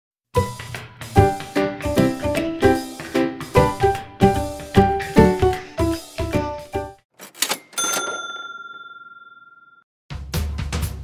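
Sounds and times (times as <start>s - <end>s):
bell-like ding: 7.5s - 9.8s.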